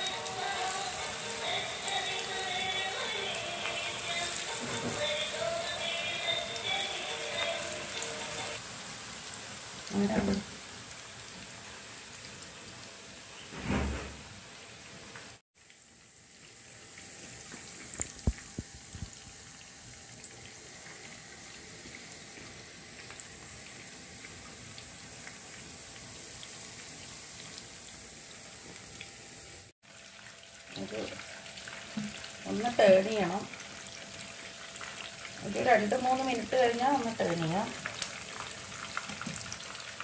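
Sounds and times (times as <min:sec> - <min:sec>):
chicken deep-frying in oil: 0:00.0 - 0:40.0.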